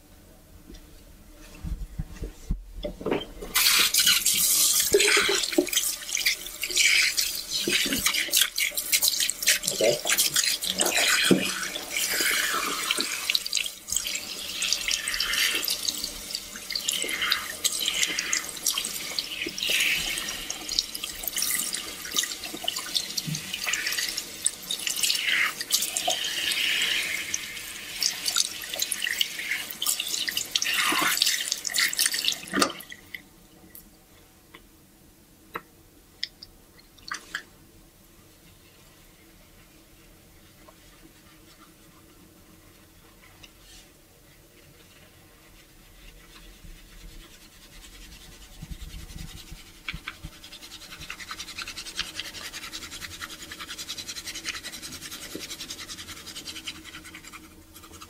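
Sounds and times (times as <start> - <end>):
water splashing in a sink: 3.5 - 33.3, 46.8 - 58.0
water running from a tap: 3.6 - 33.1.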